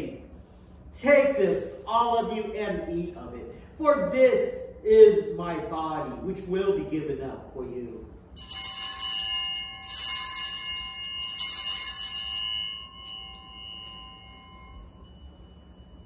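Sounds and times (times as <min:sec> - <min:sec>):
altar bells ringing: 0:08.4 - 0:16.0.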